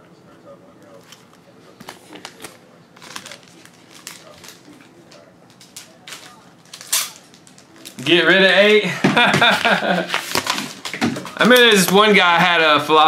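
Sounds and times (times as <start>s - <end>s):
card packaging crinkling: 0.9s - 8.8s, 9.5s - 12.2s.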